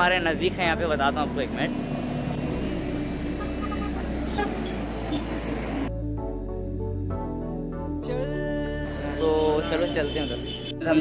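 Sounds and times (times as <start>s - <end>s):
passing vehicle engines: 0.0s - 5.9s.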